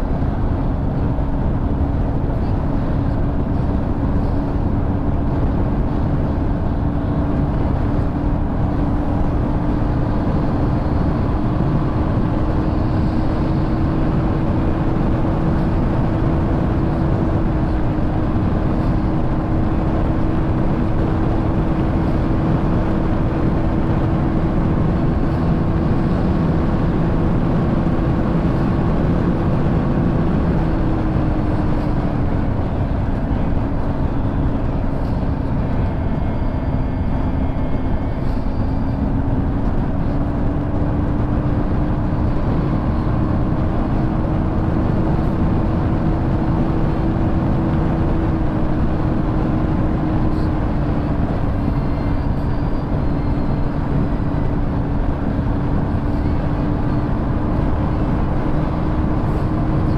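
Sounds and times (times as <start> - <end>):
motorcycle engine cruising: 0.0 - 59.9
wind rush on microphone: 0.0 - 59.9.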